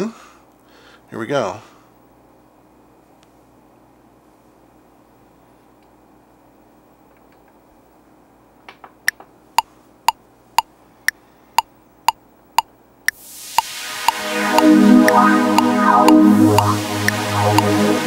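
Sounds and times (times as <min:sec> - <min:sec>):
metronome clicking: 0:14.1 - 0:17.7.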